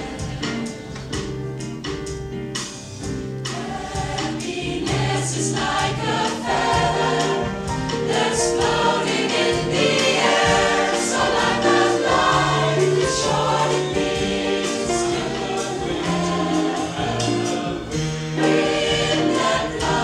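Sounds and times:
mixed choir singing in harmony: 0.0s - 1.3s, 3.0s - 20.0s.

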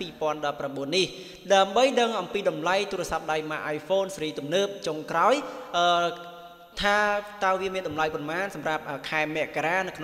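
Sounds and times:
man narrating in chant-like voice: 0.0s - 10.0s.

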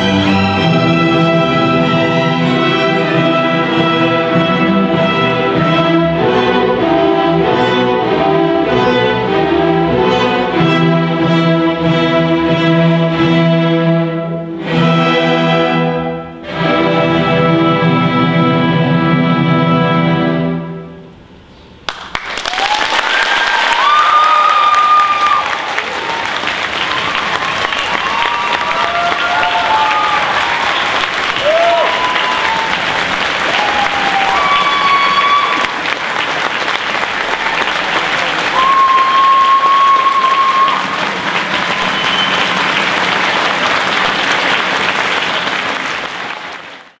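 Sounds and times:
audience applause: 21.9s - 47.0s
crowd shouting and whooping: 22.4s - 35.8s, 38.4s - 42.9s.

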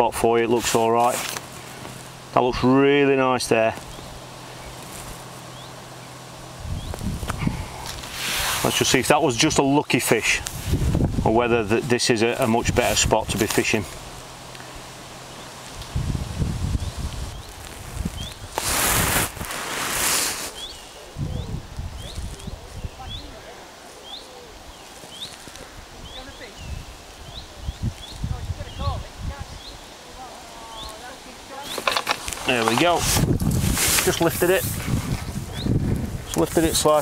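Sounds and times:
bird chirping: 3.8s - 7.2s, 16.7s - 18.5s, 20.5s - 30.0s, 30.6s - 32.8s, 35.5s - 35.8s
wind rumble on microphone: 6.5s - 8.8s, 10.4s - 11.8s, 15.7s - 20.0s, 20.6s - 23.5s, 25.6s - 29.8s, 32.8s - 37.0s
brief hissing rushes: 8.0s - 8.8s, 17.8s - 20.8s.

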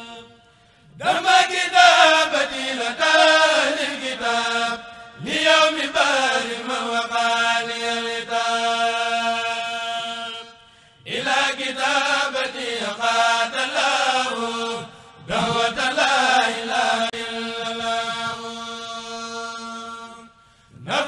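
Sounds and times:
group chanting with held notes: 1.0s - 21.0s.

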